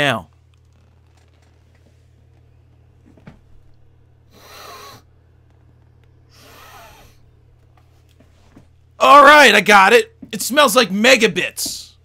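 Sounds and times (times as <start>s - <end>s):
low steady hum: 0.0s - 12.0s
man sniffing: 4.3s - 5.0s, 6.3s - 7.2s.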